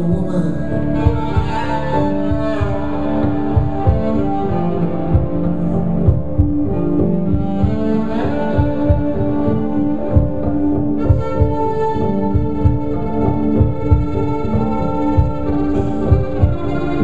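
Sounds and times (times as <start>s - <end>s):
looped low beat: 0.0s - 17.0s.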